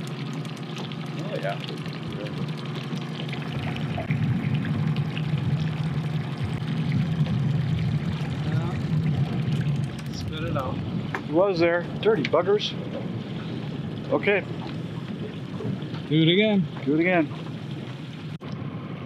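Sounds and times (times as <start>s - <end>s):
water splashing against hull: 0.0s - 18.8s
outboard motor humming: 0.0s - 19.0s.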